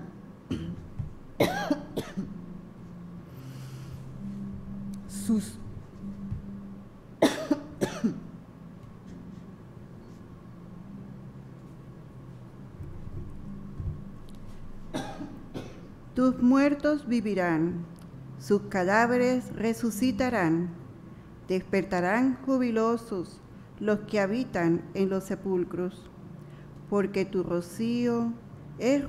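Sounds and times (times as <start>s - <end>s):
woman coughing: 0.5s - 0.8s, 1.4s - 2.4s, 7.2s - 8.2s, 14.9s - 15.9s.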